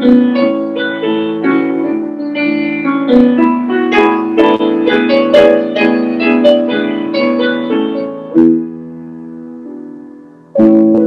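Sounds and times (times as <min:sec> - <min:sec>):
solo grand piano: 0:00.0 - 0:11.0.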